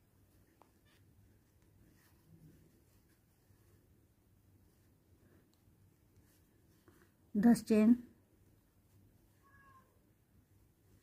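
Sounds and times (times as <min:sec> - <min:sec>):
faint high-pitched call: 0:09.4 - 0:10.0.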